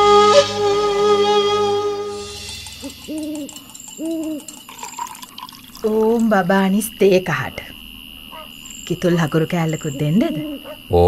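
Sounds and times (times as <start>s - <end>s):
owl hooting: 2.7s - 4.6s, 9.8s - 10.8s.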